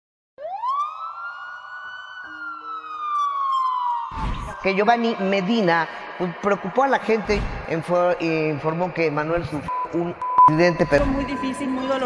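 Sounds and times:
ambulance siren wailing: 0.4 - 6.3.

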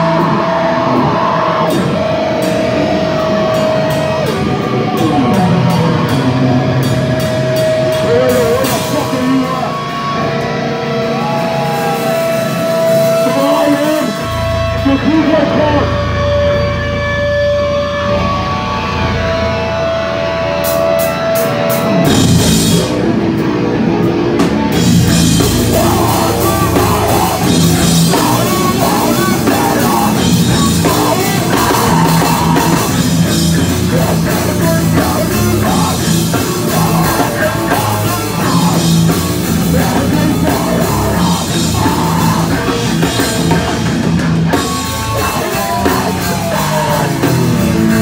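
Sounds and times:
electric guitar feedback whine: 0.0 - 48.0
hardcore band playing live: 0.0 - 48.0
low amp drone: 0.0 - 48.0.

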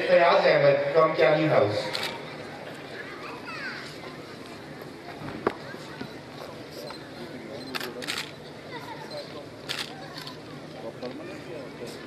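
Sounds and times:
murmur of crowd voices: 0.0 - 12.0.

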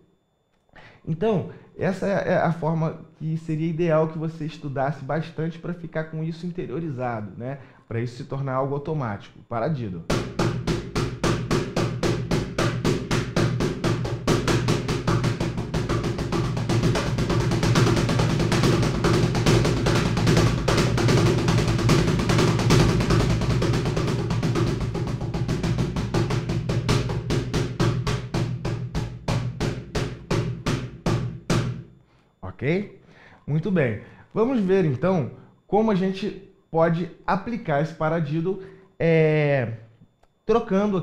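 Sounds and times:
cajon played with hands: 10.1 - 31.8.

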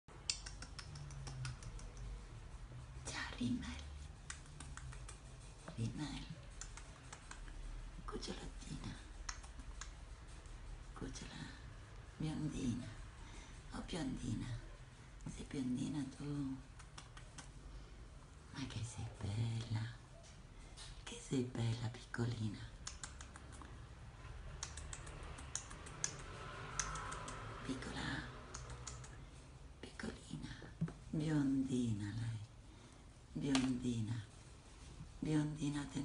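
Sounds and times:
light sharp clicks and taps: 0.2 - 2.3, 4.0 - 5.8, 6.5 - 7.7, 9.1 - 10.1, 16.7 - 17.6, 22.7 - 23.8, 24.4 - 27.6, 28.4 - 29.2, 33.5 - 33.8
woman speaking softly: 3.0 - 4.7, 5.6 - 10.0, 10.9 - 17.5, 18.4 - 20.3, 20.9 - 23.3, 26.9 - 29.1, 29.8 - 32.6, 33.3 - 34.4, 35.0 - 36.0.

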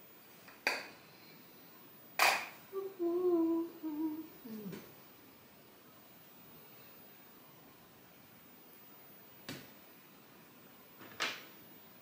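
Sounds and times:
woman humming: 2.7 - 5.0.

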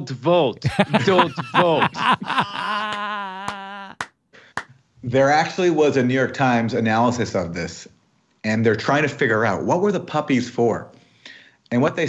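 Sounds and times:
man laughing: 0.7 - 4.0
sharp claps: 2.9 - 4.7.

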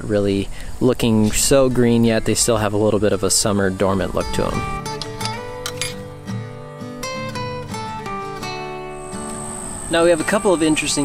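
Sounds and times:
acoustic guitar music: 1.3 - 11.0
high-pitched insect trill: 7.3 - 11.0.

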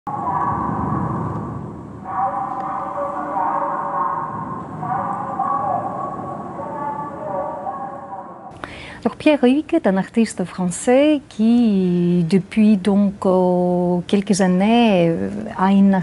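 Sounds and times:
low rumble: 0.0 - 8.5.

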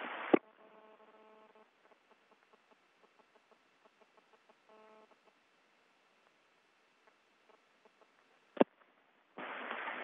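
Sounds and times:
faint steady hum: 0.0 - 10.0
faint rapid ticks: 0.3 - 5.5.

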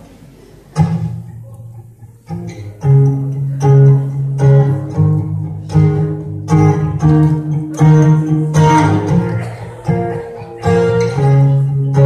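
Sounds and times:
acoustic guitar strumming chords: 0.8 - 12.0.

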